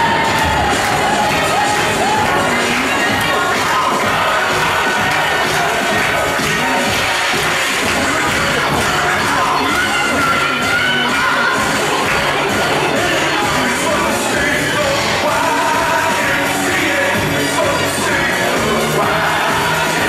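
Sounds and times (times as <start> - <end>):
children shouting and cheering: 0.0 - 20.0
dance music: 0.0 - 20.0.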